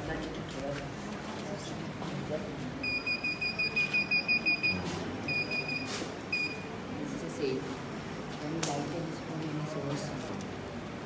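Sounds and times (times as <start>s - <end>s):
alarm buzzer pulsing beep: 2.9s - 6.6s.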